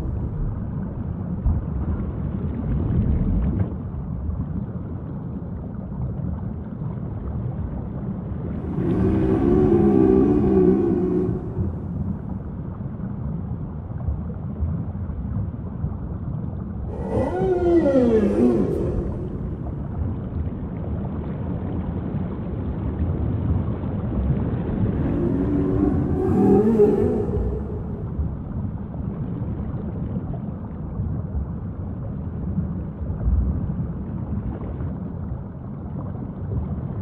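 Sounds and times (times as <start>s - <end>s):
low background rumble: 0.0s - 37.0s
humpback whale song: 8.4s - 12.8s, 16.9s - 20.4s, 24.6s - 29.3s.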